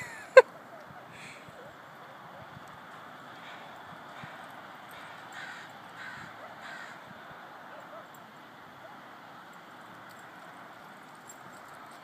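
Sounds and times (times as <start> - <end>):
outdoor background noise: 0.0 - 12.0
bird harsh calls: 3.4 - 7.1.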